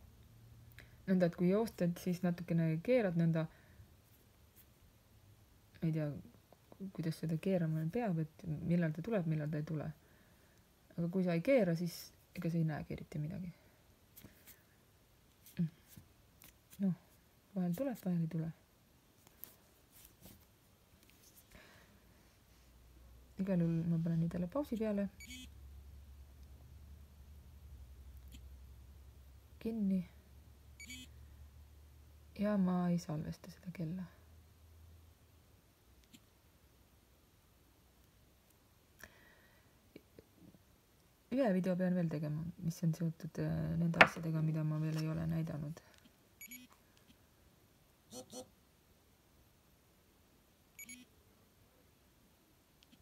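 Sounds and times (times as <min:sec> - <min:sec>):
short electronic watch beep: 0:25.2 - 0:25.5, 0:30.8 - 0:31.1, 0:46.4 - 0:46.7, 0:50.8 - 0:51.1.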